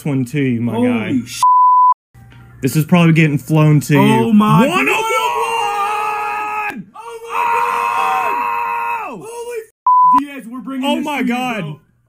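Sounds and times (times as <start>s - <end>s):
censor bleep: 1.4s - 2.0s, 9.9s - 10.2s
person talking: 4.0s - 5.0s
person screaming excitedly: 4.0s - 9.7s.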